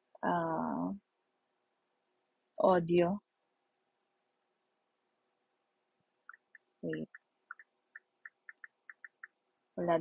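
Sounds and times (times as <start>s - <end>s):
faint high-pitched ticks: 6.2s - 9.4s.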